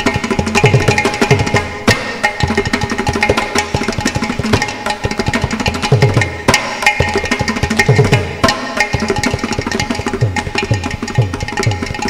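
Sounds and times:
fast hand drum percussion: 0:00.0 - 0:12.0.

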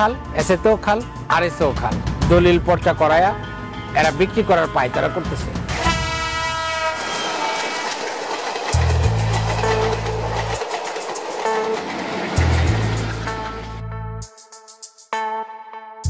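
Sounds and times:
dramatic music with deep bass: 0:00.0 - 0:05.8, 0:08.8 - 0:10.6, 0:11.5 - 0:14.4
locomotive horn: 0:05.7 - 0:08.0
fast ticking beat: 0:08.5 - 0:13.2.

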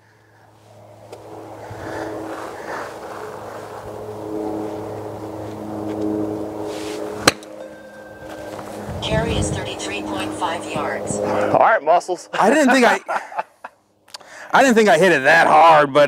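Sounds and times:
steady hum: 0:00.0 - 0:14.8
golf ball struck: 0:07.2 - 0:08.7.

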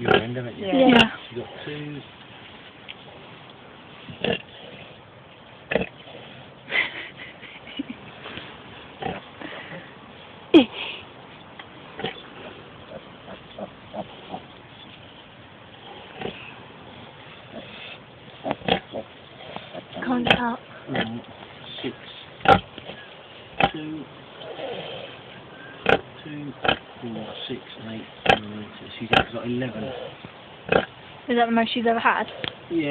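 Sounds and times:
piglets grunting and squeaking: 0:00.0 - 0:01.7, 0:04.1 - 0:05.0, 0:05.7 - 0:06.4, 0:09.0 - 0:09.8, 0:12.0 - 0:27.5, 0:28.1 - 0:31.0.

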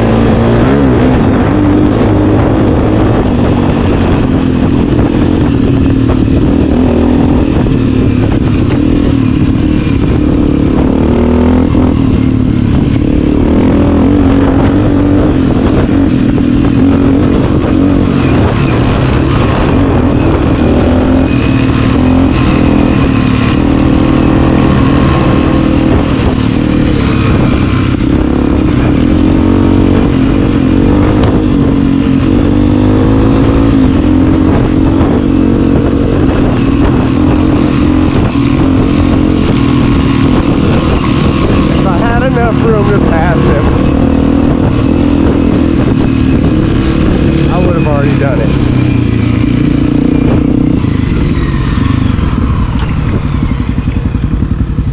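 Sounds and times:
motorcycle engine running: 0:00.0 - 0:54.9.

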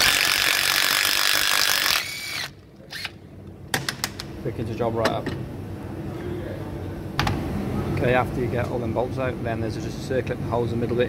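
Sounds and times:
impact wrench whirring: 0:00.0 - 0:03.2.

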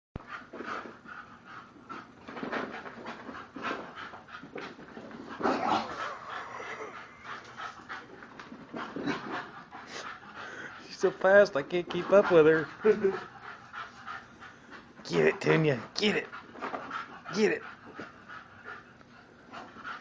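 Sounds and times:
puppy panting: 0:00.2 - 0:20.0.

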